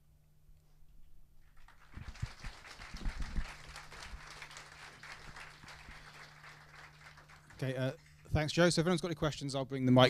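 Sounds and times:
audience applauding: 1.4 - 8.7.

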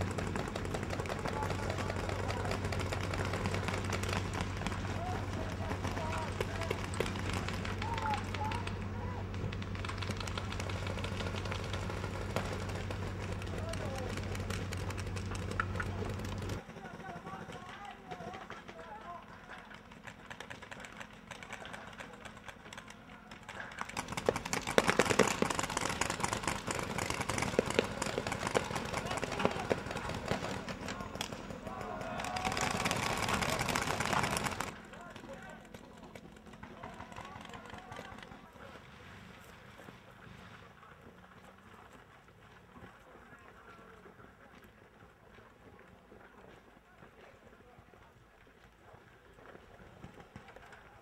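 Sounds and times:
armoured vehicle engine hum: 0.0 - 44.7
clatter of vehicle tracks: 0.0 - 51.0.

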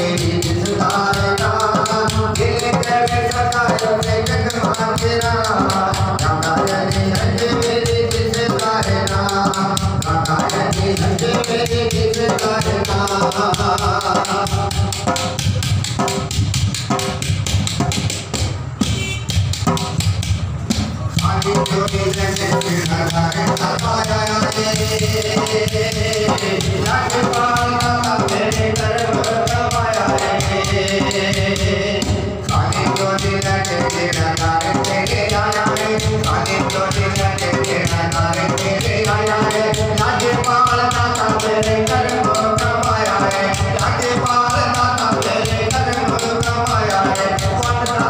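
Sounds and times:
man singing into microphone: 0.0 - 15.7, 21.1 - 48.0
hand drum beaten fast: 0.0 - 48.0.

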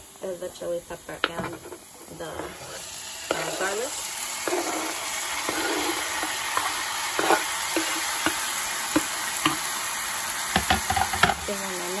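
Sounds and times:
vegetables sizzling in hot oil: 0.0 - 12.0
knife and spoon knocking and scraping: 4.4 - 9.6.

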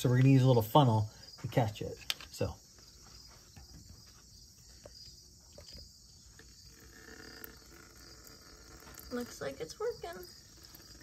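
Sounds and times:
high-pitched insect chirring: 4.3 - 11.0.

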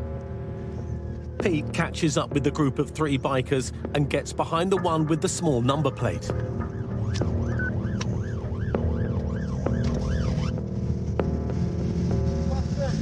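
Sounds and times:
engine and road rumble: 0.0 - 13.0
police siren yelping: 6.3 - 10.6.

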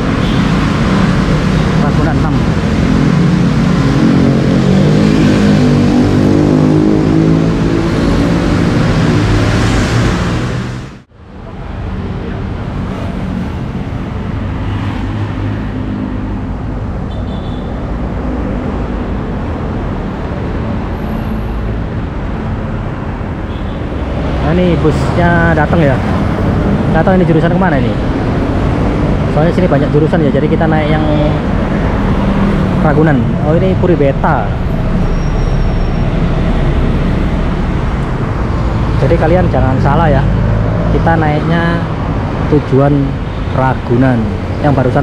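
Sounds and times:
cars and motorbikes passing: 0.0 - 45.0.

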